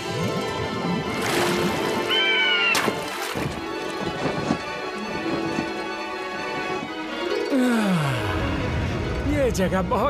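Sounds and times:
water splash: 0.0 - 4.0
background music: 0.0 - 10.0.

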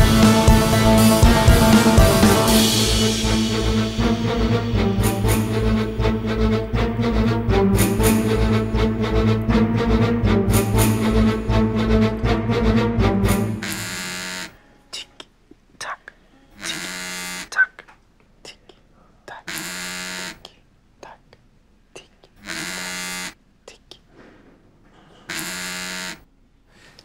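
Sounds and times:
mobile phone vibrating: 13.6 - 14.6, 16.6 - 17.5, 19.5 - 20.4, 22.4 - 23.4, 25.3 - 26.2.

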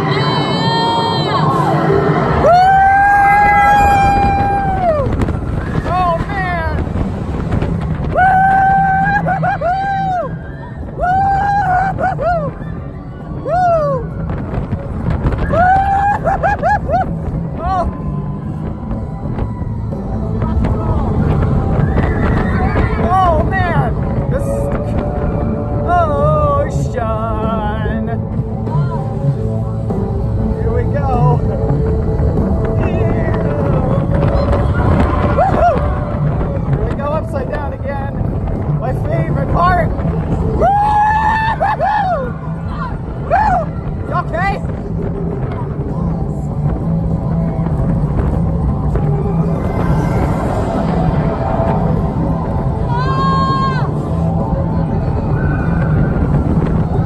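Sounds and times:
roller coaster rumble and rushing air: 0.0 - 57.0.

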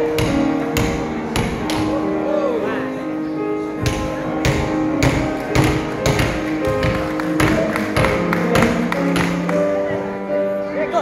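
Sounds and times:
music with held notes: 0.0 - 11.0
hammers knocking on chocolate: 3.9 - 9.4.

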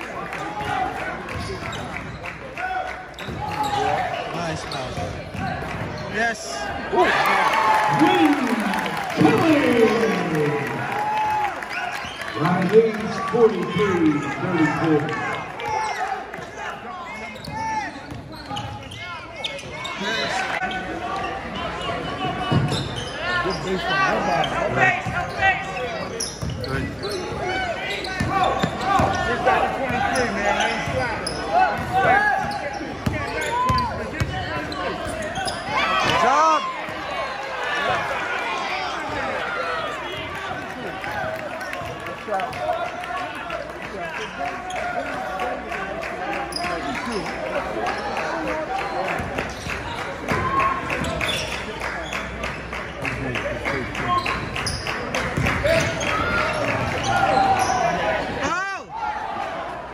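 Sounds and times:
sneakers squeaking: 0.6 - 2.4, 3.1 - 6.2, 15.6 - 38.1, 46.5 - 47.4, 49.2 - 52.4, 54.2 - 58.5
spectators talking: 11.7 - 59.9.

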